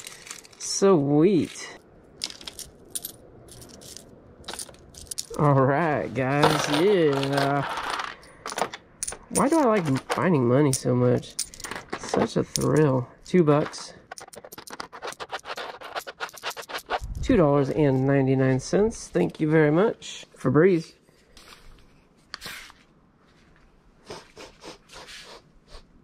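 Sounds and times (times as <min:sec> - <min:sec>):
coins clinking in hand: 0:02.2 - 0:05.4, 0:06.4 - 0:10.1, 0:10.7 - 0:12.9.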